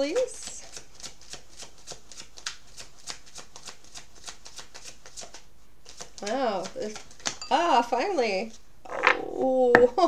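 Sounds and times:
cards being shuffled: 0:00.0 - 0:07.4.

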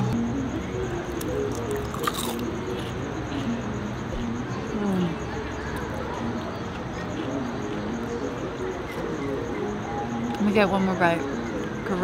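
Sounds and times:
quiet background music: 0:00.0 - 0:12.0
crunch: 0:01.1 - 0:03.0
chewing fried food: 0:01.1 - 0:03.6.

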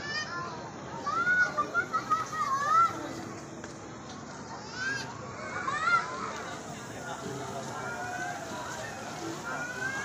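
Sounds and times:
children calling out: 0:00.0 - 0:03.2, 0:04.5 - 0:06.4, 0:07.7 - 0:10.0
background murmur: 0:00.0 - 0:10.0.

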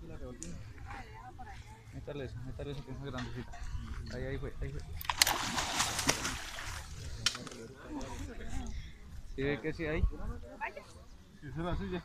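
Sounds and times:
water splashing and dripping: 0:05.0 - 0:07.5.

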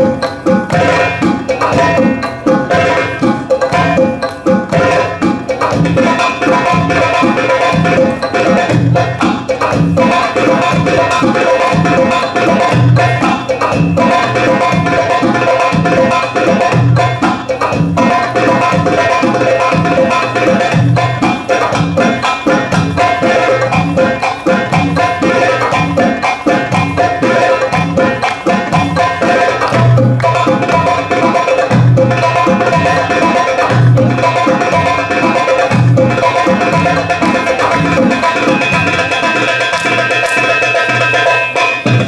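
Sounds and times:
goblet drum solo: 0:00.0 - 0:42.0.

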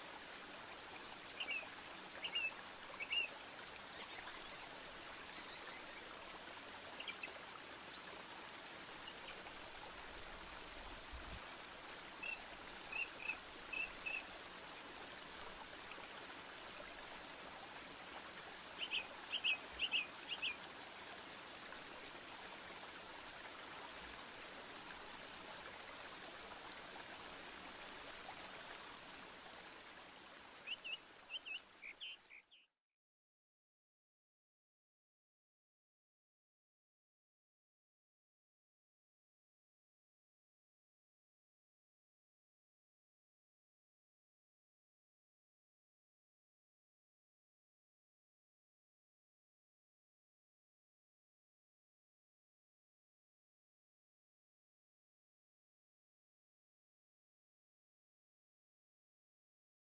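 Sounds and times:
running water rushing: 0:00.0 - 0:32.6.

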